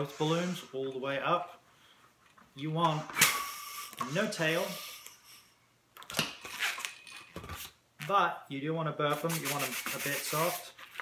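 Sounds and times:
balloons rubbing and scraping: 0.0s - 0.9s, 9.2s - 10.8s.

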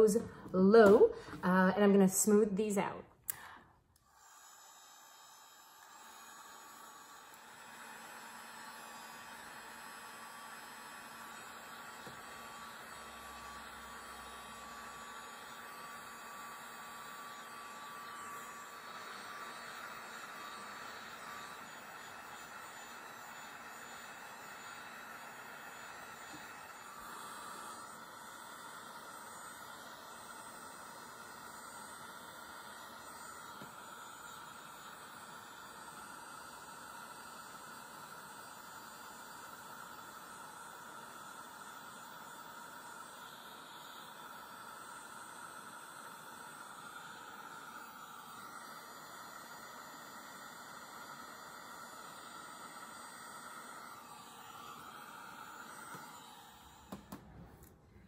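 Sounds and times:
heat gun blowing air: 0.0s - 58.0s.

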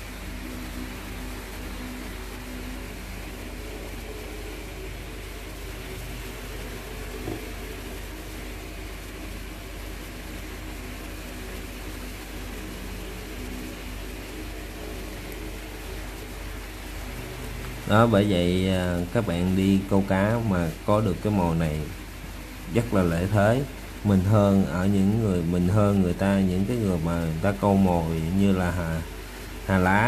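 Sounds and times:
background hum and hiss: 0.0s - 30.0s
faint steady tones: 0.0s - 30.0s
small tap: 7.2s - 7.5s.

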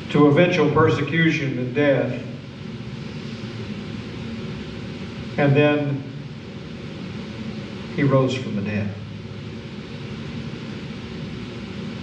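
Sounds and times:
large hall room tone rumble: 0.0s - 12.0s.

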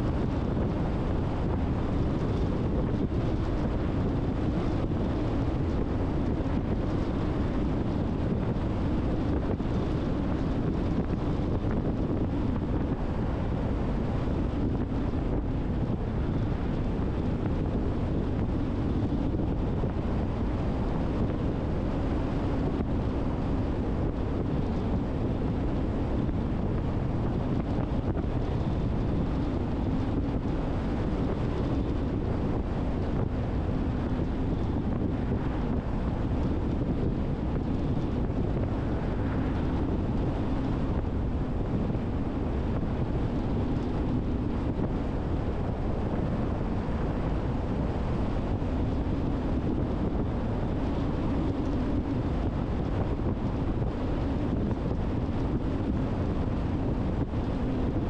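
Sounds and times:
tyre and wind noise: 0.0s - 58.0s.

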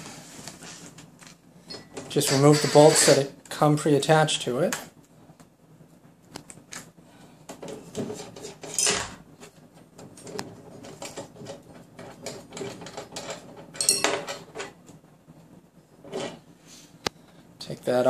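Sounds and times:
metal brackets clattering: 12.3s - 14.7s
metal clinks and rattles: 12.6s - 14.5s.

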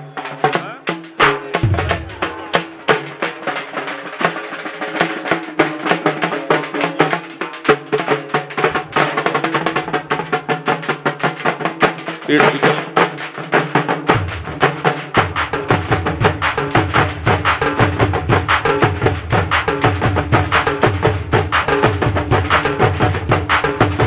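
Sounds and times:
frame drums beaten with sticks: 0.0s - 24.0s.

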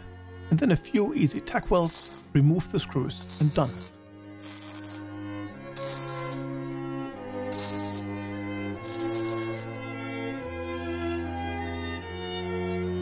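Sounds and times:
slow bowed-string music: 0.0s - 13.0s
welding crackle: 3.2s - 5.0s, 5.8s - 6.4s, 7.5s - 8.1s, 8.8s - 9.7s.

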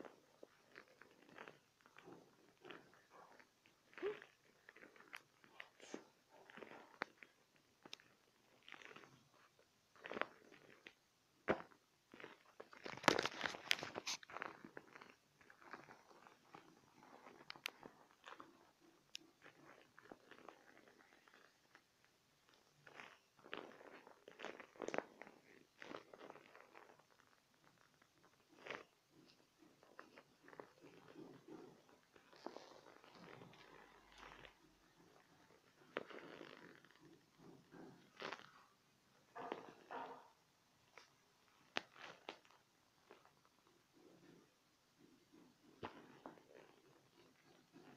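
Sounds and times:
vinyl and fabric crinkling: 0.0s - 47.9s.

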